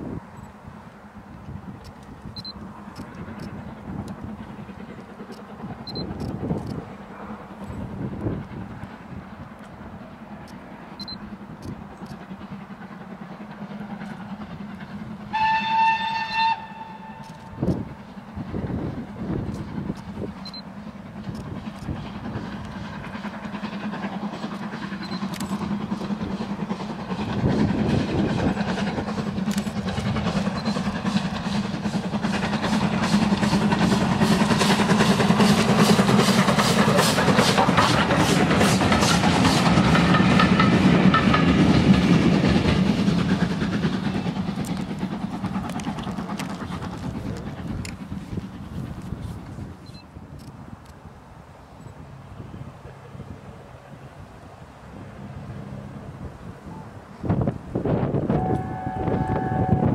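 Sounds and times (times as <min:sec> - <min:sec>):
locomotive exhaust beats: 0:00.7 - 0:50.9, 0:51.9 - 0:59.9
steam locomotive whistle: 0:15.3 - 0:17.6, 0:58.0 - 0:59.9.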